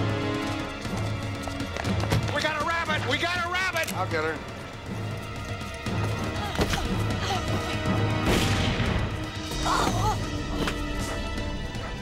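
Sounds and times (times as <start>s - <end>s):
tense chase music: 0.0s - 12.0s.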